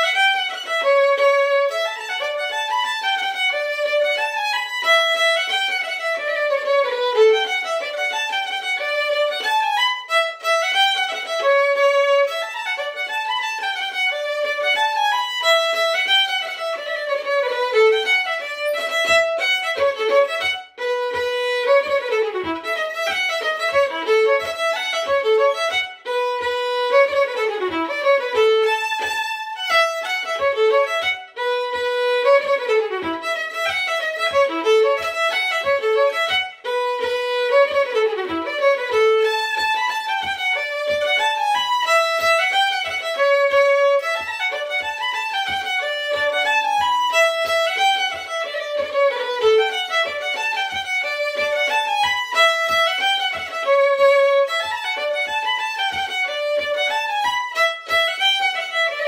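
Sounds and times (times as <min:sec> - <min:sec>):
fiddle playing a tune: 0:00.0 - 0:59.0.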